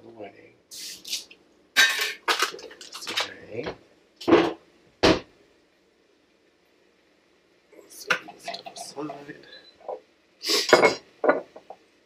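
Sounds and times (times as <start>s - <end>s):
dishes and utensils clattering: 1.8s - 3.3s, 10.6s - 11.8s.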